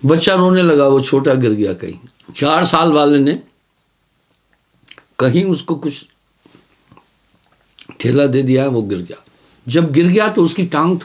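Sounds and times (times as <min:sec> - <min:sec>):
man speaking: 0:00.0 - 0:03.6, 0:05.2 - 0:06.2, 0:07.8 - 0:11.0
faint mouth clicks and lip noises: 0:02.1 - 0:02.4, 0:03.5 - 0:05.2, 0:06.1 - 0:08.0.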